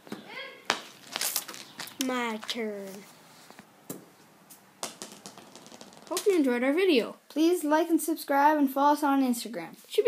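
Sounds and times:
plastic ball bouncing on pavement: 0.0s - 3.0s, 3.8s - 6.6s.

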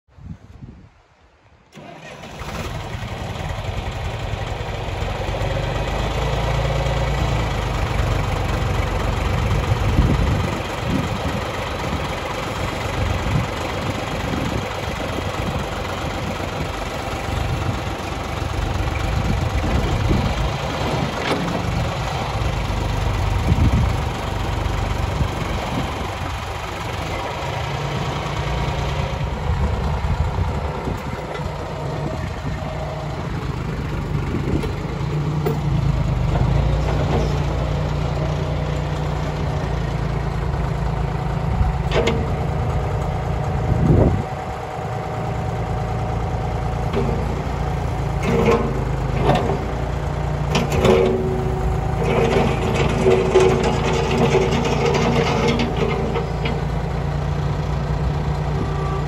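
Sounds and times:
backhoe loader engine running: 1.7s - 59.0s.

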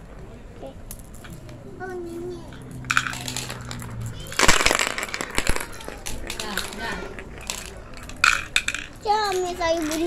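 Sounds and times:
marbles clattering on wooden board: 2.5s - 10.0s.

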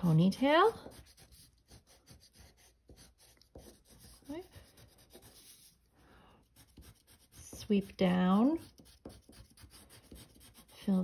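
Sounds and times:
crayon scratching on paper: 0.0s - 5.8s, 6.4s - 11.0s.

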